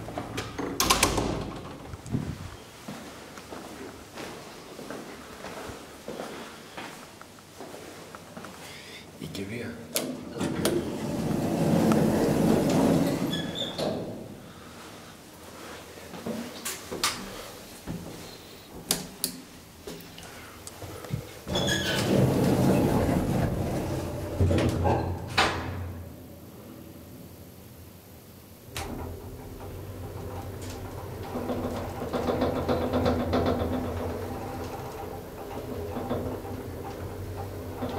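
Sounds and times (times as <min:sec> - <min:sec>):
elevator door sliding open: 0:00.0 - 0:02.4, 0:10.1 - 0:14.4, 0:21.4 - 0:26.2, 0:28.6 - 0:37.9
elevator pump motor hum: 0:28.7 - 0:37.9.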